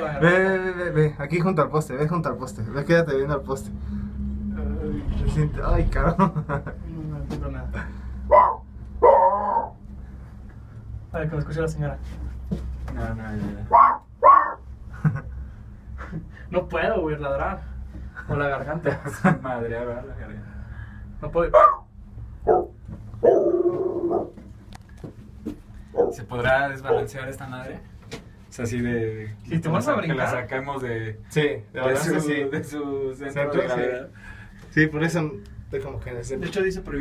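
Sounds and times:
man imitating dog barks: 8.4s - 9.8s, 13.7s - 14.6s.

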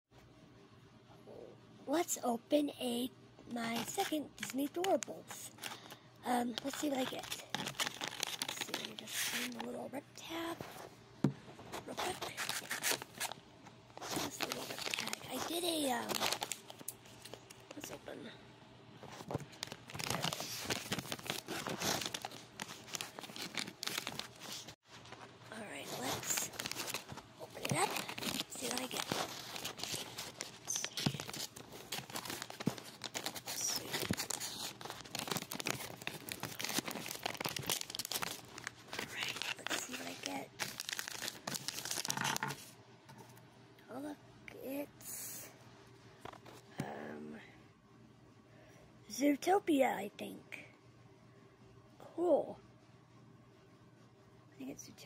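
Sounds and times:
packaging crinkling and tearing: 3.6s - 5.9s, 6.5s - 9.8s, 11.8s - 13.4s, 14.0s - 17.9s, 19.3s - 42.7s.

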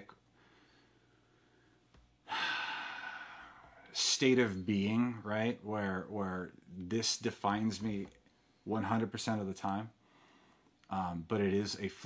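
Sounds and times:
man breathing in: 0.4s - 3.9s, 10.0s - 10.7s
man speaking: 3.9s - 8.1s, 8.7s - 10.0s, 10.9s - 12.0s.

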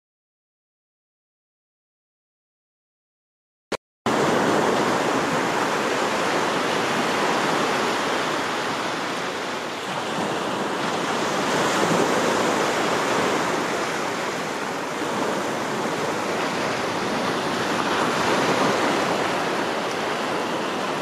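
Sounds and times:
small waves washing onto beach: 4.1s - 21.0s.

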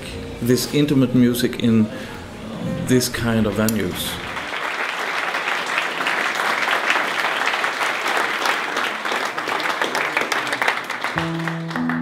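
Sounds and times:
audience applauding: 3.8s - 12.0s.

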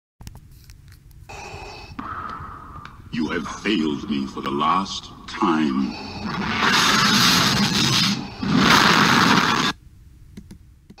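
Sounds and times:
harsh bursts of rushing noise: 6.2s - 9.8s.

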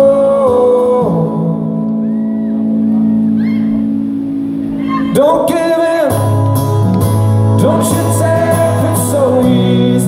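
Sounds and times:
man singing: 0.0s - 2.0s, 5.0s - 10.0s
strummed acoustic guitar: 2.7s - 10.0s.

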